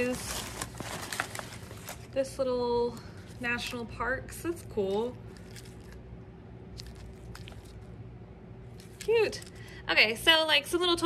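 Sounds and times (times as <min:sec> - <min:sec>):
plastic bag rustling and crinkling: 0:00.0 - 0:02.4
low steady hum: 0:00.0 - 0:11.0.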